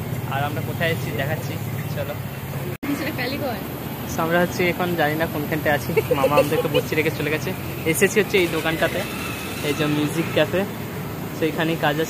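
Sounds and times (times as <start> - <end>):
street traffic rumble: 0.0 - 12.0
people talking: 0.3 - 2.2, 2.8 - 10.7.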